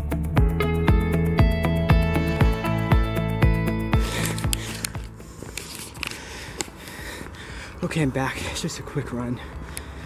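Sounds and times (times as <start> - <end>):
background music with steady beat: 0.0 - 7.8.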